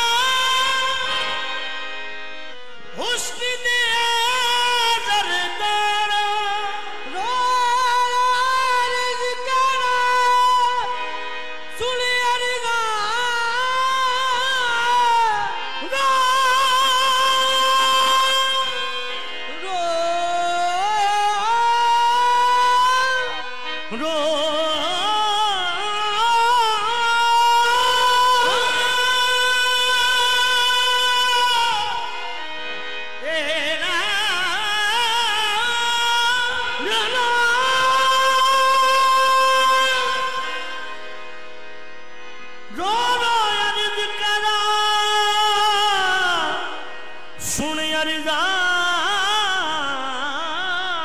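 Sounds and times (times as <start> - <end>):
harmonium: 0.0 - 51.0.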